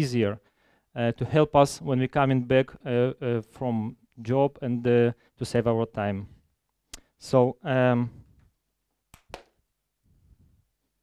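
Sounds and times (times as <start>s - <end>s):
hand claps: 9.1s - 9.6s.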